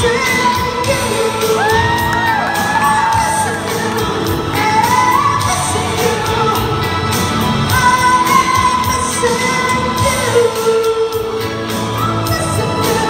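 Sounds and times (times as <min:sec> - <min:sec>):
backing track with steady beat: 0:00.0 - 0:13.0
person singing into microphone: 0:00.0 - 0:13.0.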